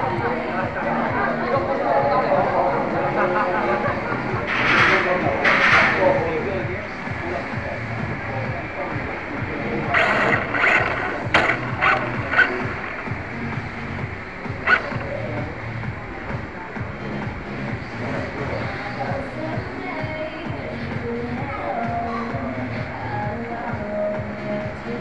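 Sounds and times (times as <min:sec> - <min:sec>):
music playing: 0:00.0 - 0:25.0
people chattering: 0:00.0 - 0:25.0
hissy bursts: 0:08.9 - 0:16.1
sharp clicks: 0:09.9 - 0:15.5.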